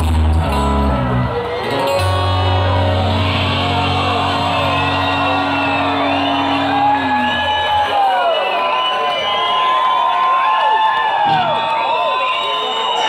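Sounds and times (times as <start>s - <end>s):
rock band sustained chord: 0.0s - 8.0s
crowd shouting and whooping: 0.0s - 13.0s.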